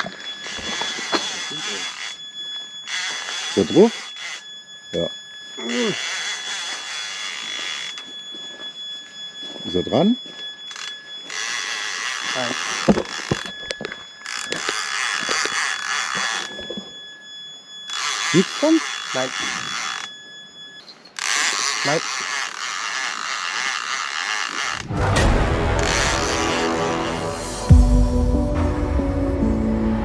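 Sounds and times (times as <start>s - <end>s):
fishing reel whirring: 0.0s - 9.4s, 10.0s - 25.0s, 25.8s - 27.5s
reel clicks: 0.2s - 4.7s, 6.0s - 8.9s, 10.6s - 24.9s.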